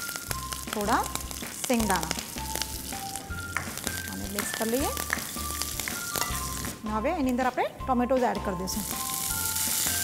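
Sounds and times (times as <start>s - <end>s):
hot oil sizzling in a pan: 0.0s - 6.9s, 8.6s - 10.0s.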